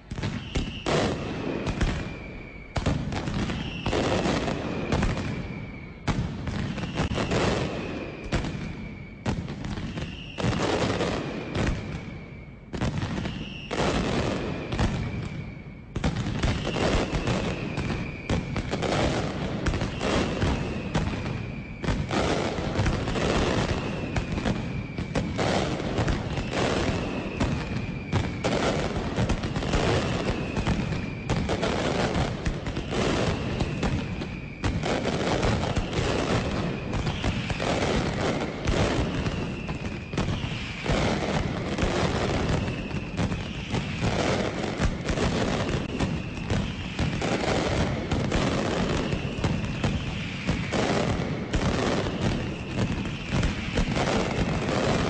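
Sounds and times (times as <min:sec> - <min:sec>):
firecrackers barrage with booms: 0:00.0 - 0:55.0.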